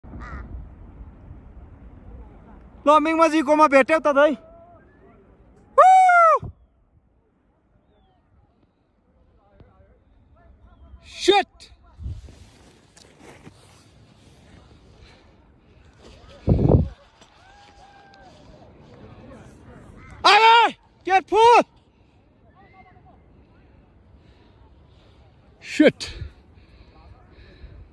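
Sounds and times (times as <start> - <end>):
footsteps crunching on snow: 12.1 - 20.0.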